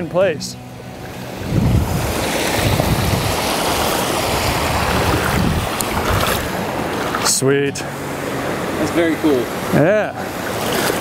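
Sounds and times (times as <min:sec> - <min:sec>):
stream water rushing: 0:00.0 - 0:11.0
wind on microphone: 0:01.0 - 0:07.3.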